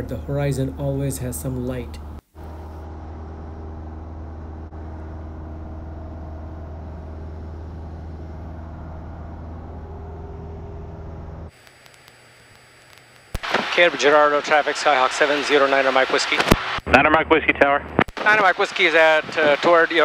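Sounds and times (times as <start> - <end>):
light aircraft engine drone: 0.0 - 11.8
faint hiss: 11.5 - 16.9.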